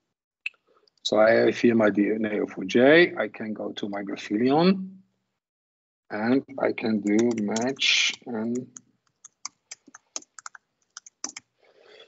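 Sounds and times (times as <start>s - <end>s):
keyboard key clicks: 7.0s - 7.8s.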